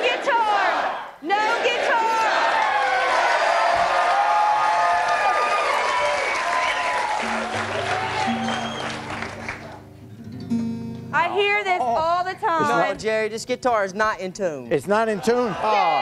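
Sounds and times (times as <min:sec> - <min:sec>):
audience cheering and applauding: 0:00.4 - 0:09.9
acoustic guitar strummed: 0:07.2 - 0:13.4.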